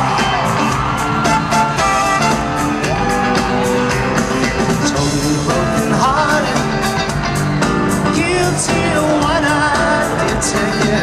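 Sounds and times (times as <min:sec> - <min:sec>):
live band playing upbeat song: 0:00.0 - 0:11.0.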